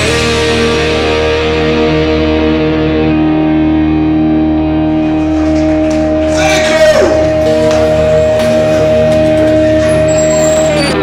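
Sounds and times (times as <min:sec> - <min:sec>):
distorted electric guitar chord ringing: 0:00.0 - 0:11.0.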